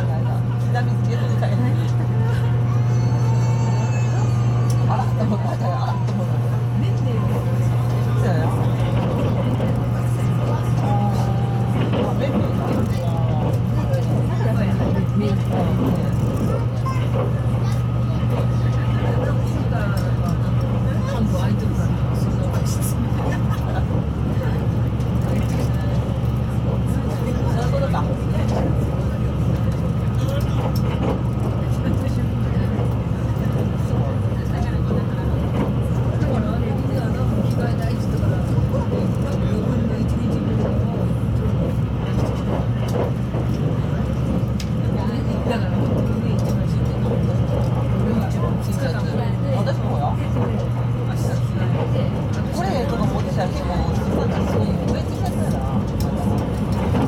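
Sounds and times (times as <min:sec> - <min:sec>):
murmur of passengers talking: 0:00.0 - 0:57.0
train motors and wheels droning: 0:00.0 - 0:57.0.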